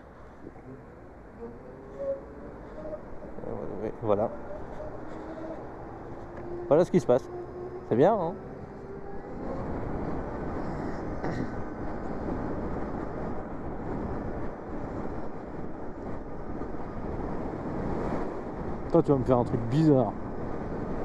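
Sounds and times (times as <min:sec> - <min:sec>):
wind and road rush: 0:00.0 - 0:21.0.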